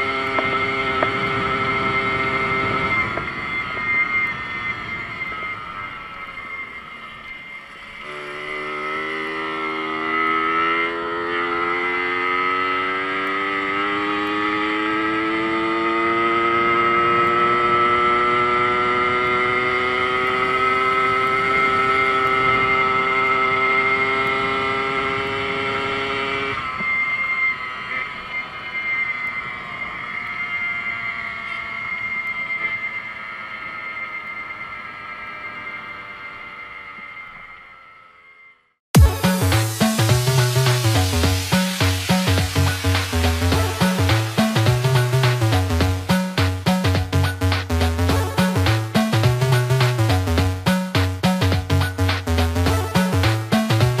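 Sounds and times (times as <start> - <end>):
small motorcycle engine: 0.0 - 54.0.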